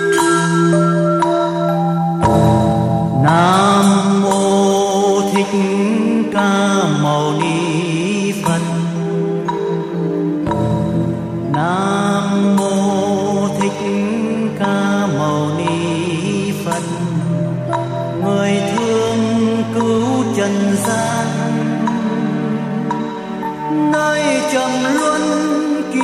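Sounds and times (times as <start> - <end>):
slow meditative melody: 0.0 - 26.0.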